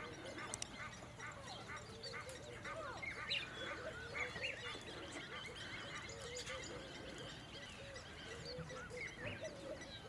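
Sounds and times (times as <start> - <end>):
birds chirping and whistling: 0.0 - 10.0.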